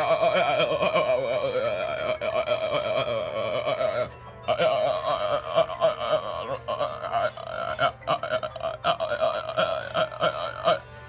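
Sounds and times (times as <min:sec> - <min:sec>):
high-pitched voice wailing: 0:00.0 - 0:10.8.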